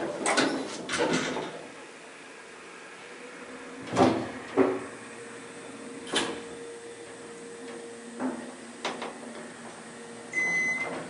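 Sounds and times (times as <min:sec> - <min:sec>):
elevator humming: 0:01.5 - 0:11.0.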